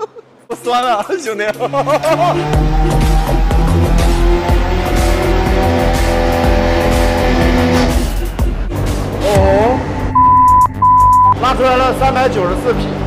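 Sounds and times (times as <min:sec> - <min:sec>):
background music: 0:00.0 - 0:13.0
car engine at high revs: 0:01.8 - 0:08.2
electronic beeps: 0:10.0 - 0:11.4.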